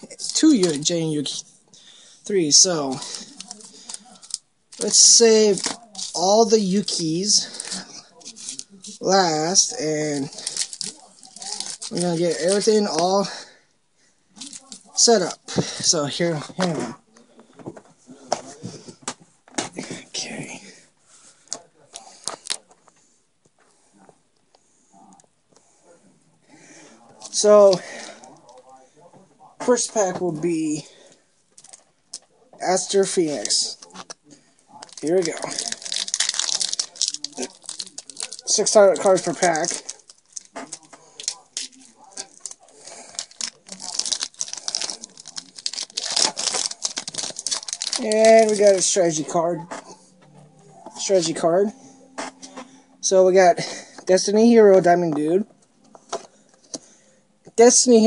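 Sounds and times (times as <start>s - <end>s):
foil wrapper crinkling and tearing: 0.0s - 1.1s, 2.4s - 13.5s, 22.0s - 22.6s, 32.8s - 34.1s, 34.8s - 49.5s, 51.0s - 51.5s.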